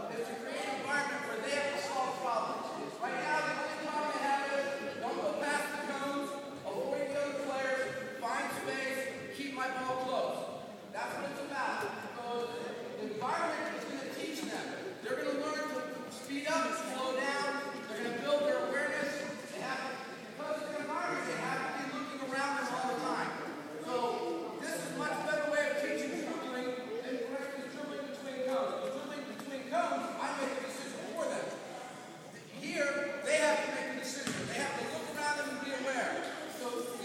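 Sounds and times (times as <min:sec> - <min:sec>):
voices echoing in gym: 0:00.0 - 0:37.0.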